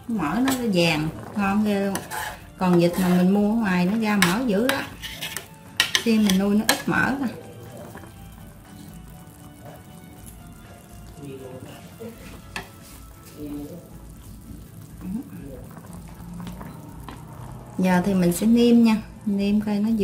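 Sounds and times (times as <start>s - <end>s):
food bubbling in a pan: 0.0s - 20.0s
metal spoon clicking on pan: 4.2s - 7.1s.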